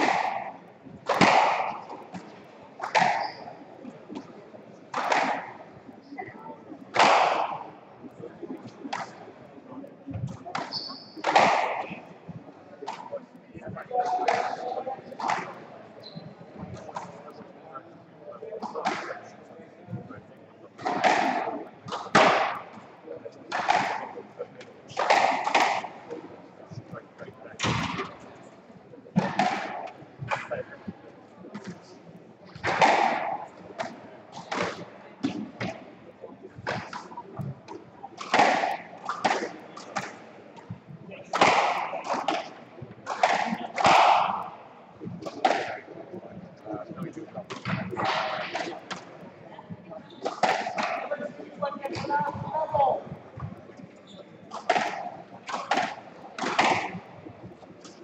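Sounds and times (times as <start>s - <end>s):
squash ball cracking off rackets: 0.0s - 5.7s, 6.9s - 7.7s, 10.5s - 12.1s, 20.8s - 22.9s, 23.5s - 26.2s, 32.6s - 35.8s, 36.6s - 40.7s, 41.3s - 46.2s, 50.2s - 51.1s, 54.5s - 57.2s.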